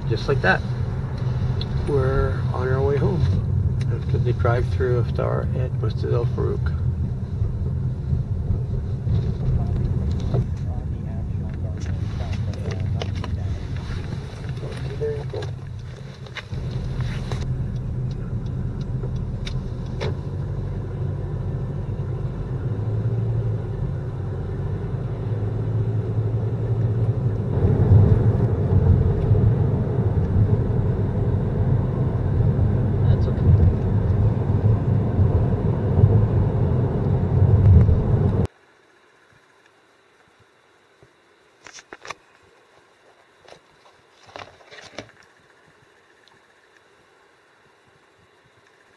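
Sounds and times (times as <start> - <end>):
car engine and tyre rumble: 0.0 - 48.9.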